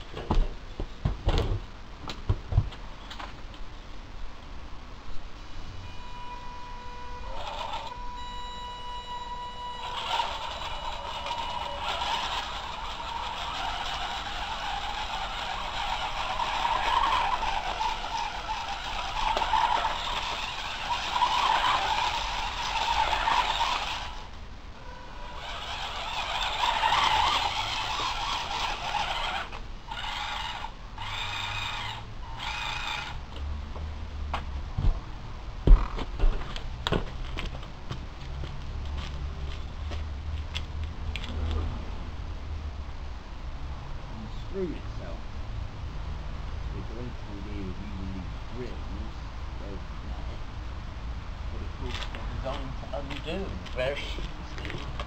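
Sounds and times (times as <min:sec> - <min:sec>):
electric motors whining: 0:05.5 - 0:33.6
robot leg mechanism jarring: 0:09.7 - 0:24.2, 0:25.2 - 0:33.2.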